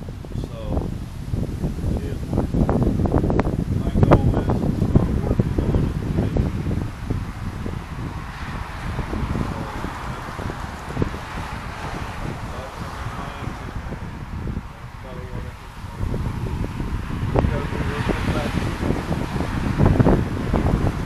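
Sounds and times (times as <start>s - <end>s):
wind buffeting microphone: 0.0s - 21.0s
car passing: 0.4s - 21.0s.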